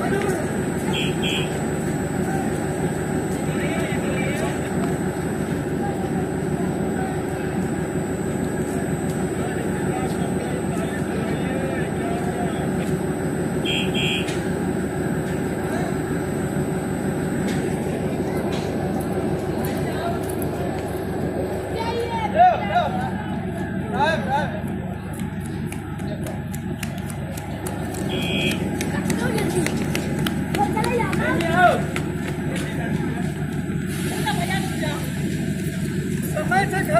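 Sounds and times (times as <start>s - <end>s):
diesel engine idling: 0.0s - 36.9s
footsteps running on concrete: 24.4s - 33.7s.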